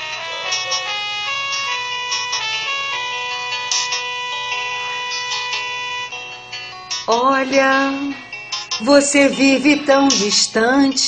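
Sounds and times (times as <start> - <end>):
instrumental karaoke backing track: 0.0 - 11.0.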